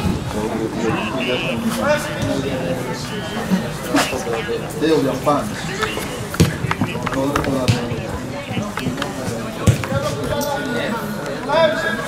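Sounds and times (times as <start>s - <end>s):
voices calling and chattering: 0.0s - 12.0s.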